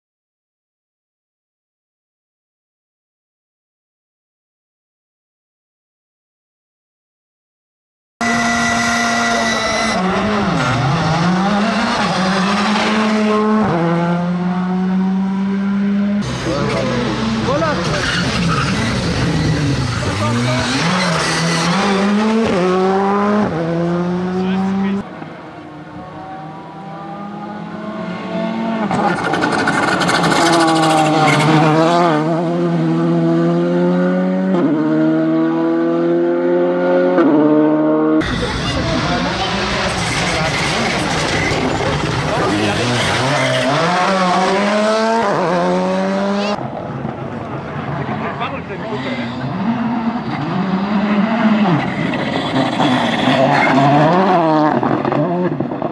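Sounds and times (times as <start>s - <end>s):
rally car engines revving: 8.2s - 55.9s.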